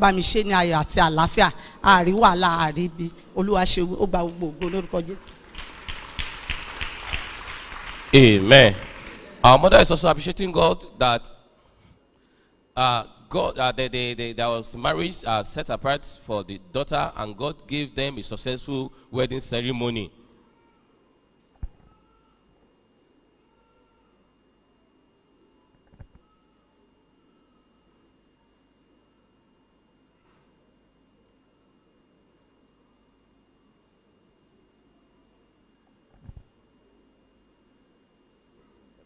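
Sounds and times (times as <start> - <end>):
congregation clapping: 4.1 - 9.8
man's amplified voice: 8.1 - 11.4, 12.8 - 20.2.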